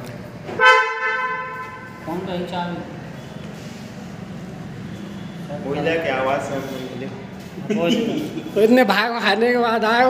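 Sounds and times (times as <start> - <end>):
car horn blast: 0.5 - 2.1.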